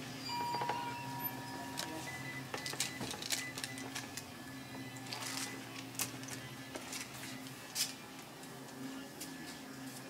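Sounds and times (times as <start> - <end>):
electronic beeps: 0.2 - 4.0
cash register clicks and rattles: 0.5 - 4.2.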